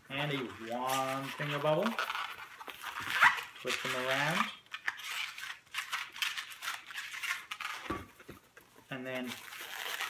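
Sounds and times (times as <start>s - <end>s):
balloons squeaking and rubbing: 0.0s - 8.2s, 8.9s - 10.0s.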